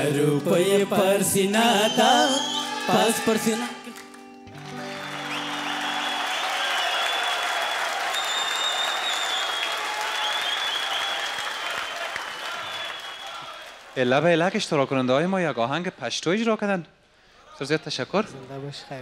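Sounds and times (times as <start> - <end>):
audience applauding: 1.7 - 14.3.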